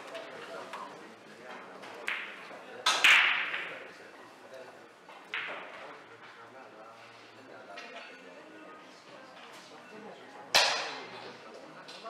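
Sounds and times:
pool balls clacking: 1.9 - 3.8, 5.3 - 5.9.

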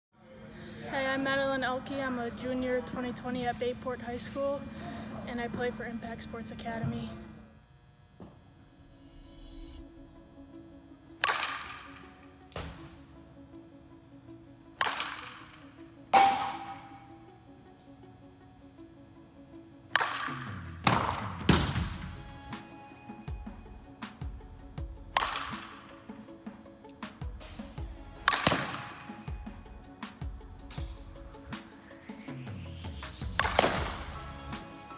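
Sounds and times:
background music with steady beat: 8.2 - 34.9
bat hitting softballs: 11.1 - 13.0, 14.7 - 17.2, 19.8 - 22.1, 25.1 - 26.0, 28.2 - 29.3, 33.3 - 34.2.

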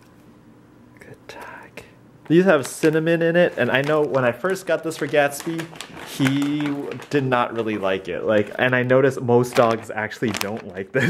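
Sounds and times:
quiet whisper: 1.0 - 2.0.

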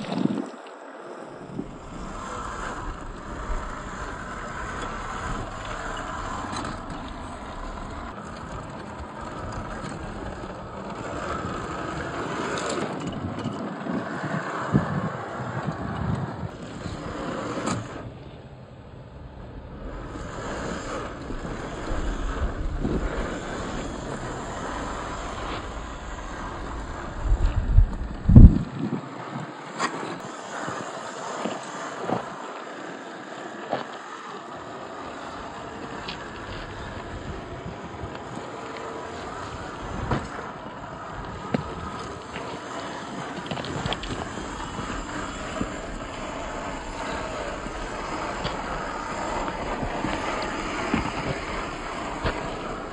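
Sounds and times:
electric motor and gearbox whirring: 0.0 - 18.2, 19.6 - 52.9
wind on microphone: 0.0 - 52.9
tyres scraping on stone: 1.4 - 18.1, 19.8 - 52.9.

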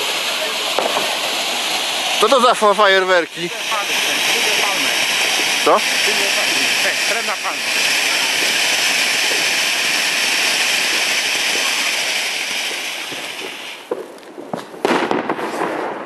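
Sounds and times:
firework fountain hissing: 0.0 - 16.0.

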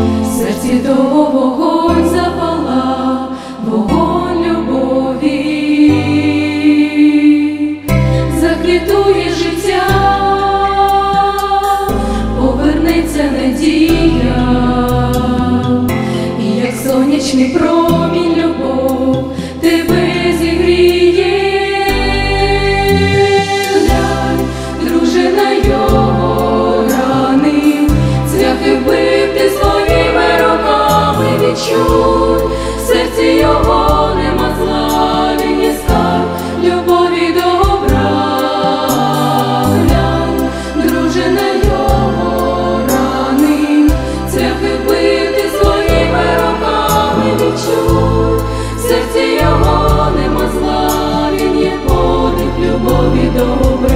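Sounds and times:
women singing in harmony: 0.0 - 53.9.

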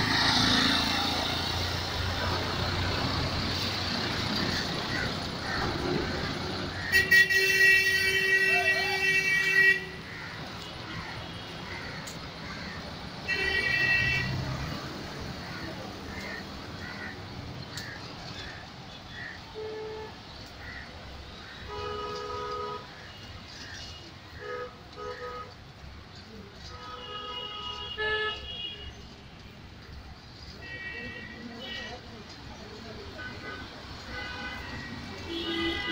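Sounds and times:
steady traffic noise: 0.0 - 35.9
vehicle horns honking: 6.8 - 10.0, 13.3 - 14.5, 21.6 - 23.3, 26.7 - 29.2, 33.2 - 35.9.

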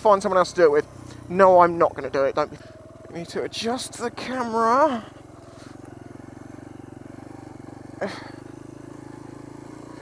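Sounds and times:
motorcycle engine running: 0.0 - 10.0.

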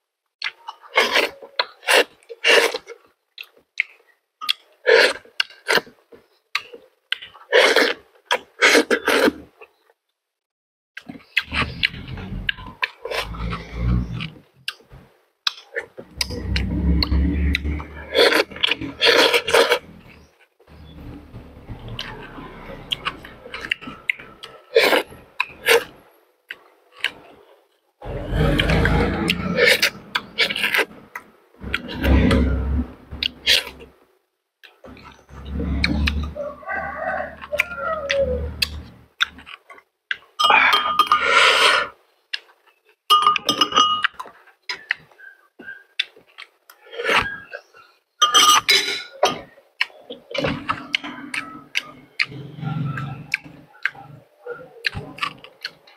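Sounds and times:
person biting and chewing food: 0.4 - 9.6, 11.0 - 27.4, 28.0 - 33.9, 37.3 - 40.3, 49.8 - 54.1, 54.8 - 55.9
cutlery clinking on dishes: 48.2 - 49.5.

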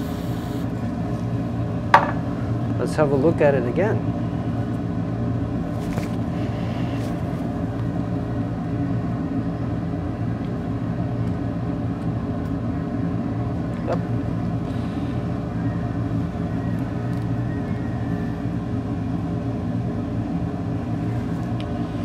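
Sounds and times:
machine hum: 0.0 - 22.0.

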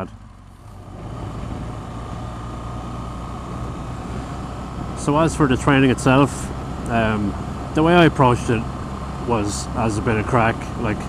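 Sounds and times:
road and wind noise: 0.0 - 11.0.

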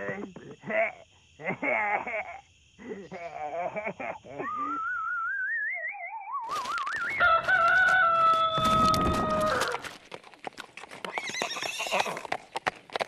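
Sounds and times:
hoof clip-clops: 6.6 - 13.0
rooster crowing: 7.0 - 9.9
horse whinny: 11.1 - 12.2.

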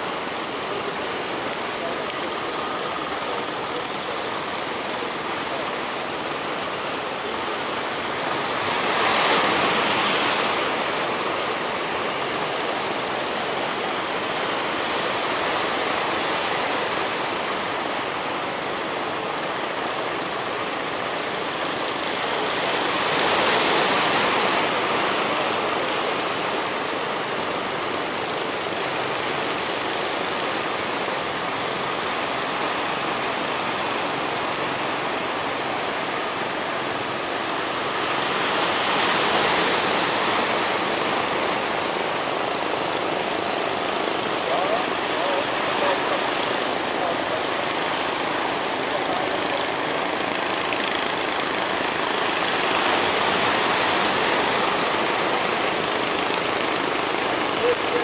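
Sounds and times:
sea surf rushing: 0.0 - 58.0
waves breaking: 0.0 - 58.0.

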